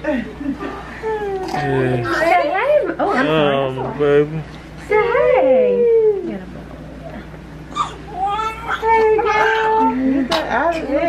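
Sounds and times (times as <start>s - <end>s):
baby whimpering: 7.7s - 10.0s
newborn baby crying: 7.7s - 10.0s.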